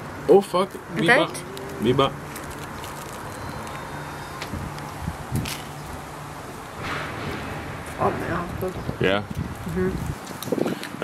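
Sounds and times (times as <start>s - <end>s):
low hum: 0.0s - 10.2s.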